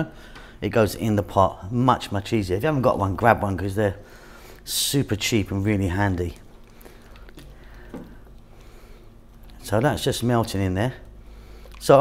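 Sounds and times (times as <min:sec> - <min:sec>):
low steady hum: 0:00.0 - 0:12.0
wooden spoon stirring soup: 0:04.6 - 0:12.0
soft clicks and squelches: 0:06.1 - 0:12.0.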